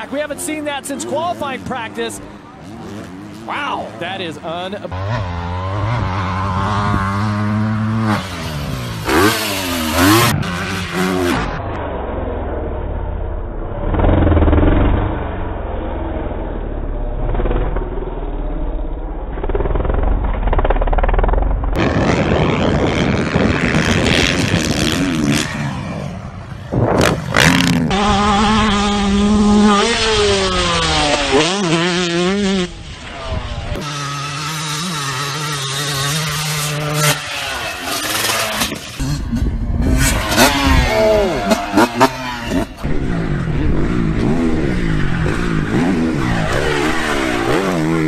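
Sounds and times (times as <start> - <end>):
dirt bike engines revving: 0.0 - 11.8, 13.7 - 21.0, 21.7 - 48.0
dirt bike engine running steadily: 0.0 - 48.0.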